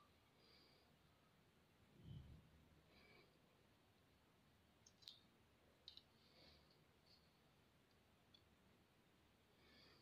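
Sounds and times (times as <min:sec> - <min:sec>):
faint clicks: 0:04.8 - 0:06.1.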